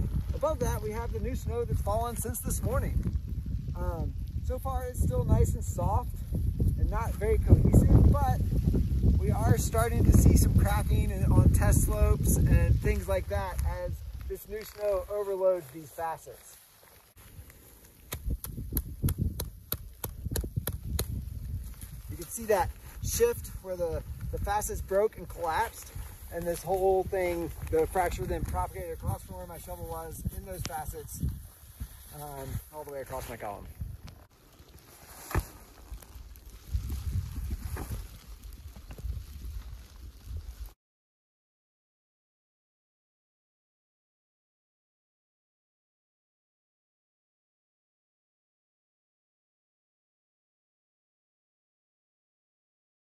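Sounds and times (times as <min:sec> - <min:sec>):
wind buffeting microphone: 0:00.0 - 0:15.1, 0:17.2 - 0:34.7, 0:35.4 - 0:40.7
skis and poles clicking in snow: 0:12.8 - 0:40.7.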